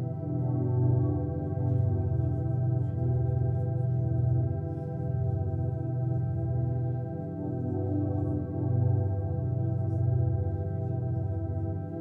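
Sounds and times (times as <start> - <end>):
pulsing low drone: 0.0 - 12.0.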